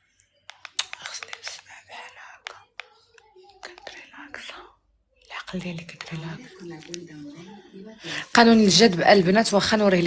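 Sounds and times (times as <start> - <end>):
sharp clicks and taps: 0.5 - 1.7
woman whispering: 0.8 - 8.5.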